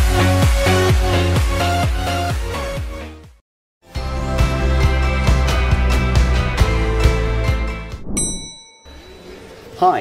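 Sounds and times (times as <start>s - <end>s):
bright chime ding: 8.2s - 9.4s.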